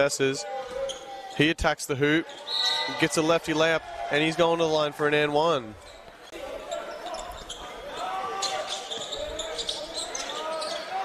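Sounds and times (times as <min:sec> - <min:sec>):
echoing indistinct voices: 0:02.1 - 0:11.0.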